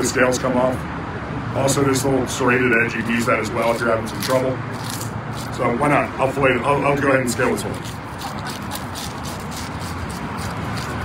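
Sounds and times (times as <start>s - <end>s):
scaling tool scraping fish scales: 3.6s - 5.8s, 7.4s - 11.0s.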